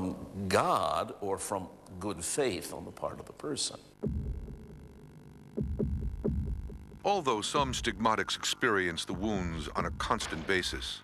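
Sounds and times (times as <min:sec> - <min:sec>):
steady low hum: 0:00.0 - 0:11.0
heartbeat-like thuds: 0:04.0 - 0:07.0.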